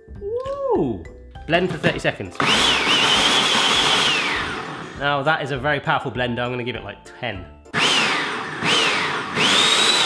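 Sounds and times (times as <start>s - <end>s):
blender motor whining: 2.4s - 5.0s, 7.8s - 10.0s.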